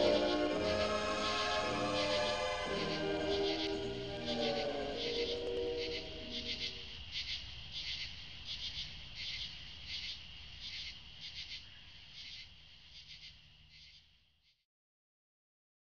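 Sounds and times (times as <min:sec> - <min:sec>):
music track: 0:00.0 - 0:06.8
insects chirping: 0:00.0 - 0:14.4.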